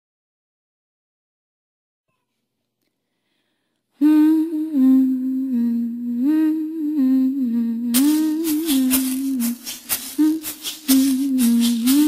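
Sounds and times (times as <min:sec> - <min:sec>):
woman humming a slow melody: 0:04.0 - 0:12.0.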